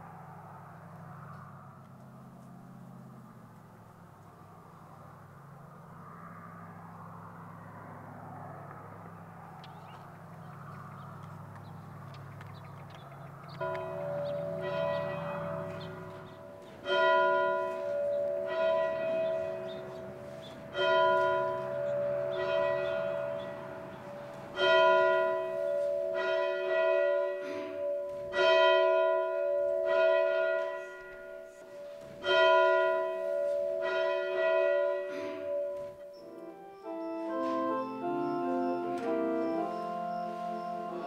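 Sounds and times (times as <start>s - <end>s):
church bell tolling: 13.5s - 41.0s.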